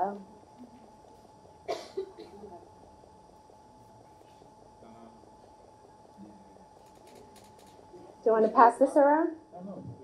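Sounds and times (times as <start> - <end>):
person coughing: 1.6 - 2.5.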